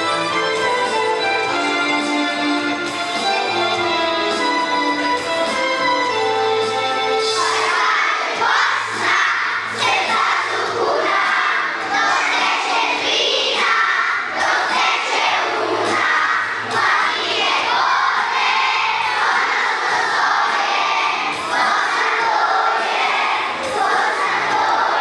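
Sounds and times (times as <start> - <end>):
children singing together: 6.7 - 25.0.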